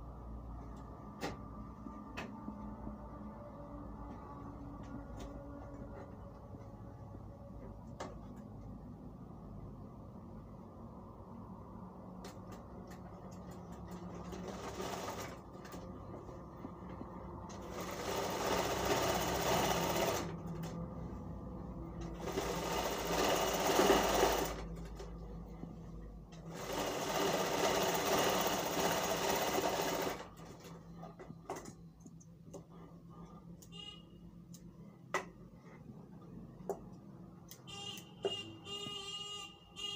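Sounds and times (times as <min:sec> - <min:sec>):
sewing machine stitching: 0:13.5 - 0:15.9, 0:17.5 - 0:20.7, 0:22.0 - 0:25.1, 0:26.4 - 0:30.8.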